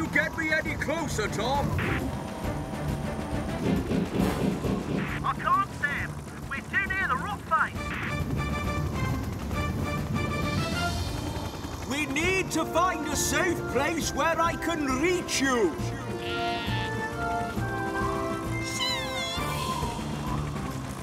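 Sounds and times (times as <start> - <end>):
dramatic cartoon music: 0.0 - 21.0
helicopter rumble: 0.0 - 21.0.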